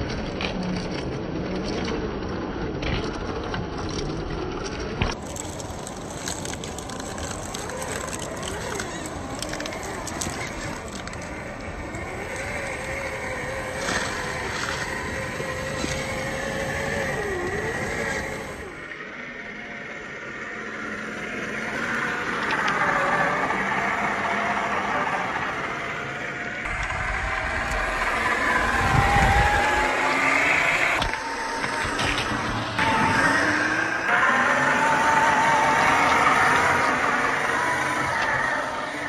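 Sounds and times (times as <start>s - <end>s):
electric motor and gears whining: 0.0s - 39.0s.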